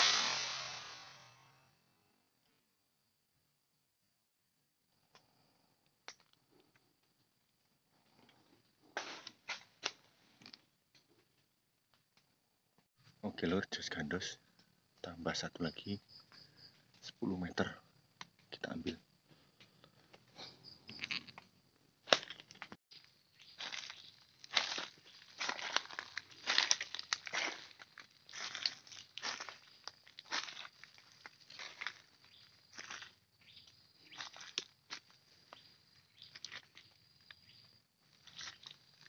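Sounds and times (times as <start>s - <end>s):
footsteps crunching through dry leaves: 23.4s - 35.1s, 38.1s - 39.0s.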